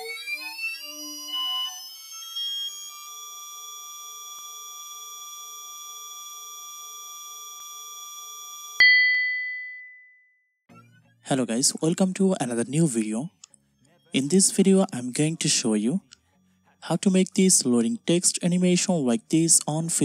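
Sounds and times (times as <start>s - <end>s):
sharp ding: 8.8s - 10.2s.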